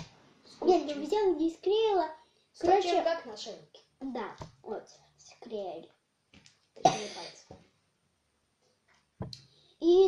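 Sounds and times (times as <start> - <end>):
child coughing: 6.8 - 7.5.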